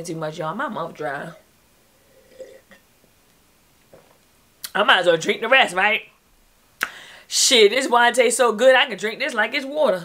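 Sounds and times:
sipping and swallowing: 2.1s - 2.8s.

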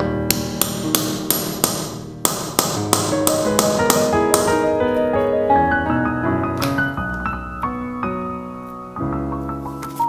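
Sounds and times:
background music: 0.0s - 10.0s
mallet striking a pricking iron: 0.3s - 4.6s.

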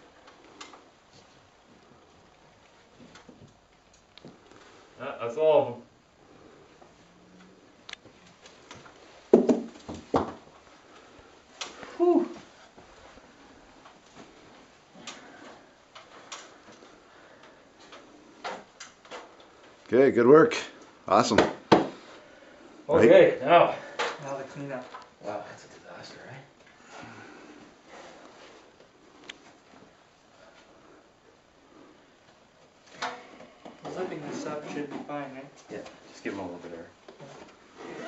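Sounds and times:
low room noise: 0.0s - 38.0s
faint clicks and light knocks: 0.2s - 4.6s
sharp knock: 21.4s - 22.0s.

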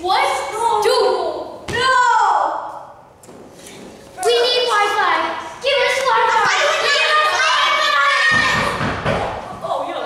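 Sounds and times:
children's voices: 0.0s - 2.8s, 4.1s - 10.0s.

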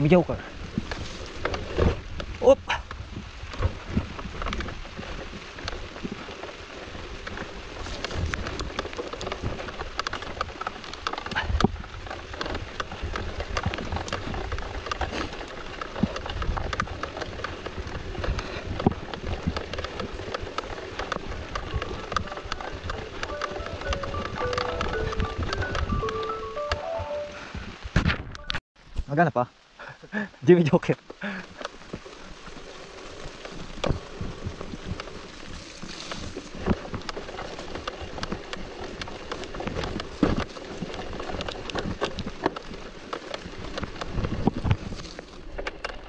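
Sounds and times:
wind rumble on microphone: 0.0s - 29.0s, 31.2s - 46.0s
bicycle tyres on wet dirt: 0.0s - 46.0s
bike chain and frame rattling: 3.4s - 26.4s, 31.2s - 46.0s
descending high tones: 23.2s - 27.4s.

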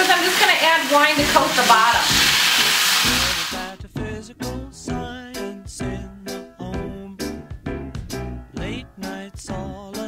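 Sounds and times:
wine sizzling in hot skillet: 0.0s - 3.8s
bouncy background music: 0.1s - 10.0s.

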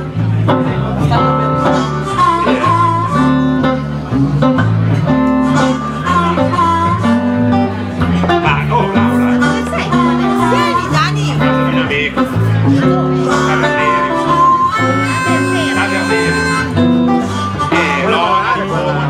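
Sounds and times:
acoustic guitar: 0.0s - 19.0s
bass: 0.0s - 19.0s
blues harmonica: 0.0s - 19.0s.

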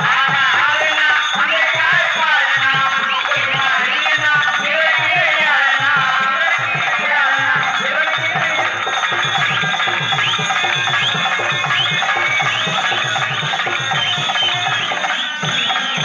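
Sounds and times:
fast drum beat: 0.0s - 16.0s
lively dance music: 0.0s - 16.0s.

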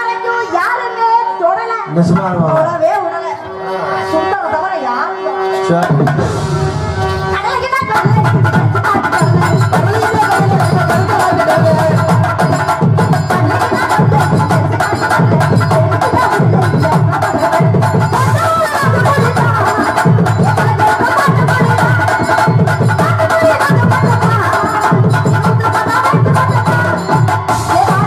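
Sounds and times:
drums and tabla beating: 0.0s - 28.0s.

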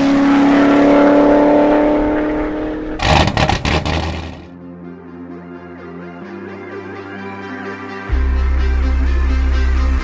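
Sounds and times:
car engine revving: 0.0s - 4.5s
rapid sharp exhaust pops: 3.0s - 4.5s.

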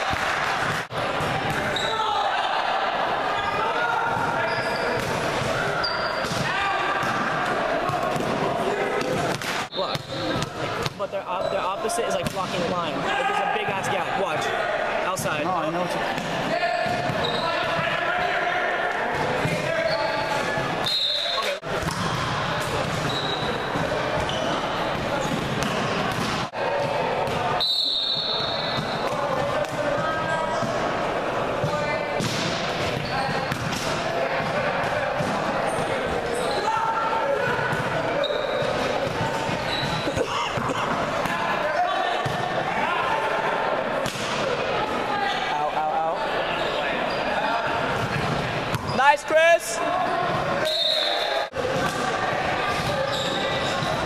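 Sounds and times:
chatter and calls of people: 0.0s - 54.0s.

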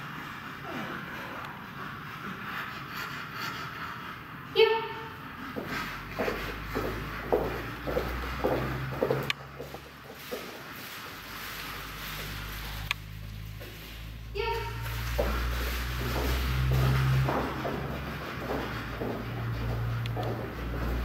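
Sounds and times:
footsteps on carpet: 5.5s - 12.8s, 14.8s - 21.0s.

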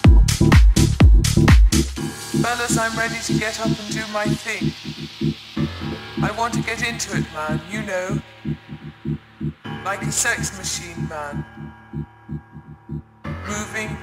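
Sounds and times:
house music beat: 0.0s - 14.0s
gliding vocal or synth phrases: 2.3s - 13.0s.

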